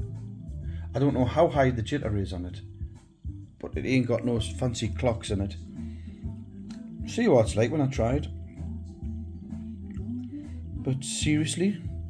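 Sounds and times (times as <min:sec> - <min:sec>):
music from hi-fi system: 0:00.0 - 0:12.0.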